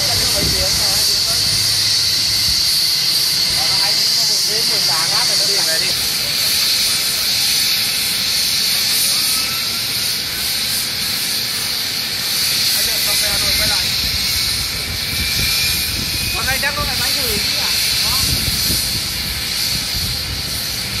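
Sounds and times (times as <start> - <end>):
deep engine rumble: 0.0 - 5.4
turbine engine hiss: 0.0 - 21.0
turbine whine rising in pitch: 0.0 - 21.0.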